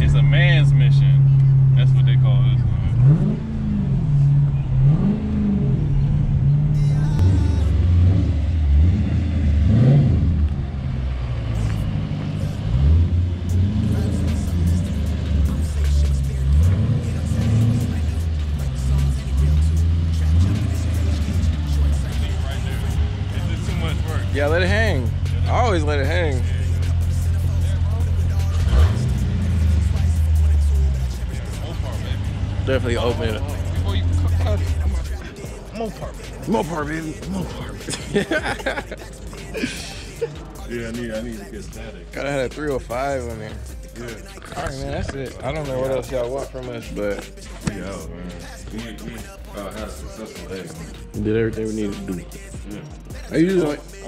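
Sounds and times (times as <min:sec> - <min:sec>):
car engine droning: 0:00.0 - 0:54.0
engine revving: 0:00.0 - 0:54.0
music: 0:06.8 - 0:08.6, 0:11.6 - 0:54.0.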